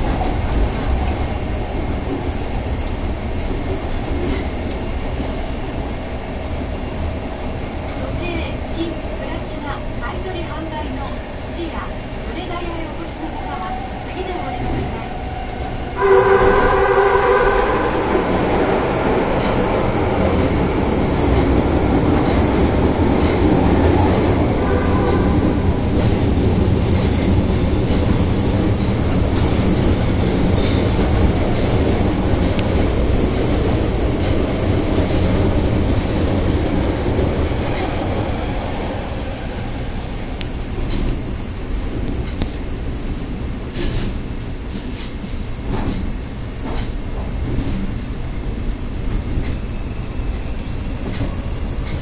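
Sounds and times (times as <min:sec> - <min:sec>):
subway train rumbling: 0:00.0 - 0:52.0.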